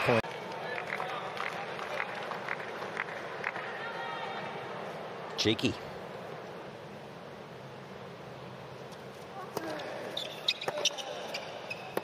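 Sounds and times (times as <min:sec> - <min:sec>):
shoes squeaking on hard court: 0:08.9 - 0:12.0.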